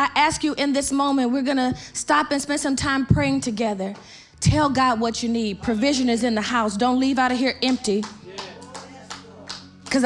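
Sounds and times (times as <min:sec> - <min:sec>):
scattered hand claps: 0:07.6 - 0:10.0.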